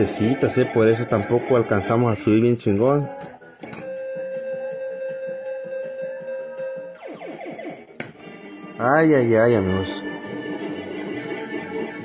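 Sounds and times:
slot machine electronic music: 0.0 - 2.1, 7.0 - 12.0.

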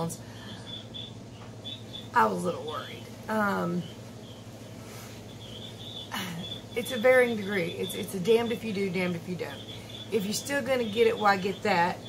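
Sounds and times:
high insect chirps: 0.0 - 12.0
low steady hum: 0.0 - 12.0.

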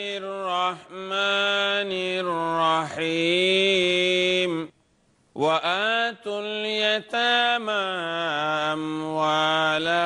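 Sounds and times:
man chanting a recitation: 0.0 - 4.8, 5.4 - 10.0.

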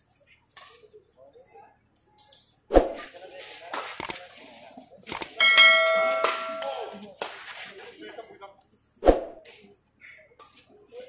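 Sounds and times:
notification bell chime: 5.4 - 7.0.

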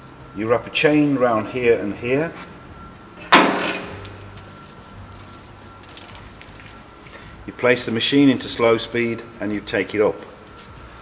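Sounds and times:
low steady hum: 0.0 - 11.0
sharp metallic clank: 3.2 - 4.3.

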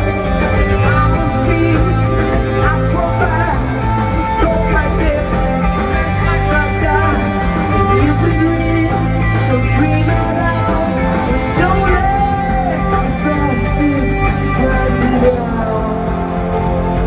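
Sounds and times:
person singing: 0.0 - 16.6
bass guitar: 0.0 - 17.0
drums: 0.0 - 17.0
electric guitar: 0.0 - 17.0.

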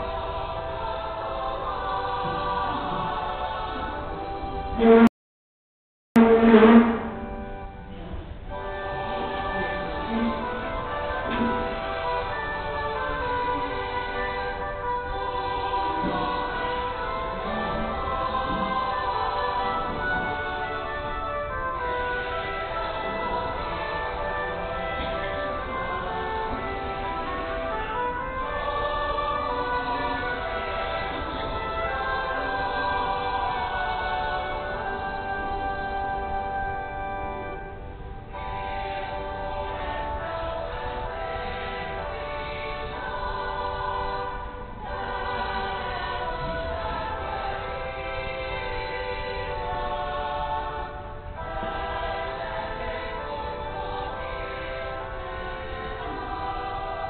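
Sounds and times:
choir singing a hymn: 0.0 - 5.1, 6.2 - 57.0.

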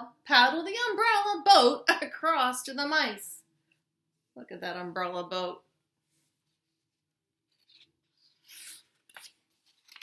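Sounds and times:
paper page rustling: 6.3 - 10.0.

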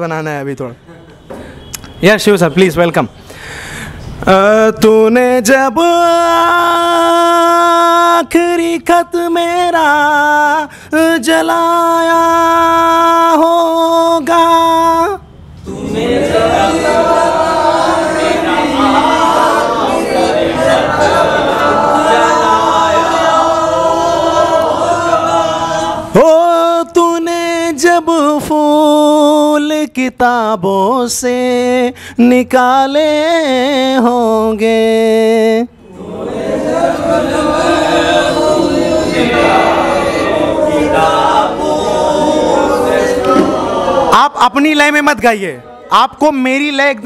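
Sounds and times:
voices singing without accompaniment: 3.3 - 44.5.

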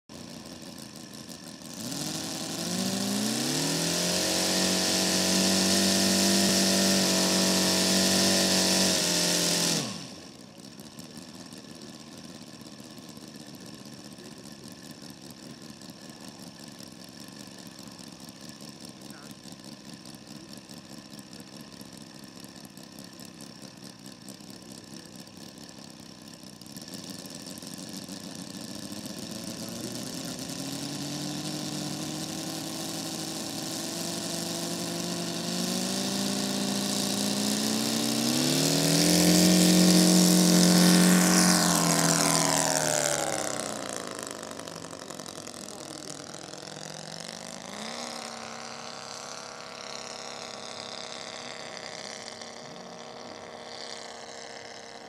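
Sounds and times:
model plane engine running: 0.1 - 55.0.

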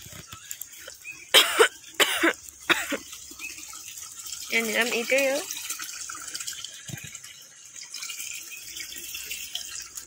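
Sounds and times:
person coughing: 1.3 - 3.0.

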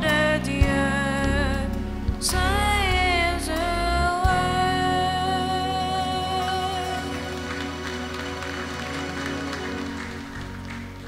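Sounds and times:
steady bass line: 0.0 - 11.0.

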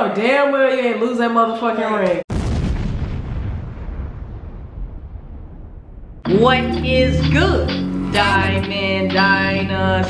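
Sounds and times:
deep boom rumble: 2.3 - 7.1.

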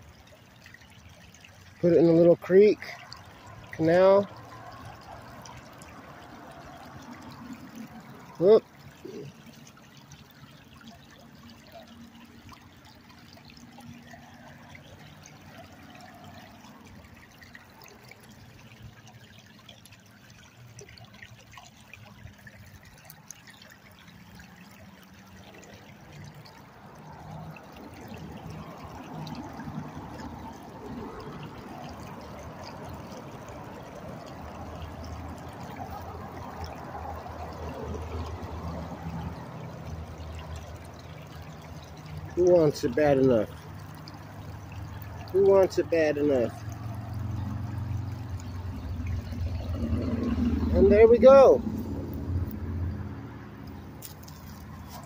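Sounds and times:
creek water running: 0.0 - 55.0.

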